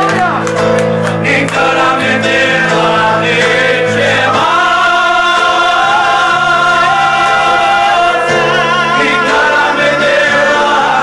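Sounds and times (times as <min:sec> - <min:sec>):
men singing together: 0:01.1 - 0:11.0.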